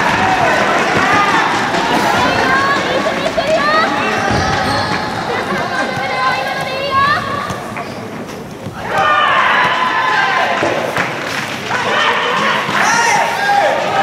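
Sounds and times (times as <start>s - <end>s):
players and spectators chattering: 0.0s - 14.0s.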